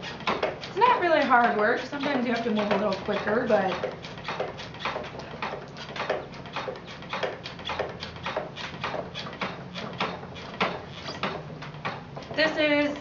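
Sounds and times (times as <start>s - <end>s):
wooden treadle wheel knocking: 0.0s - 13.0s.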